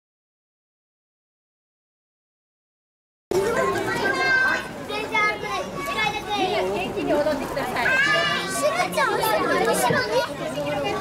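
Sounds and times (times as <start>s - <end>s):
young children chattering: 3.3s - 11.0s.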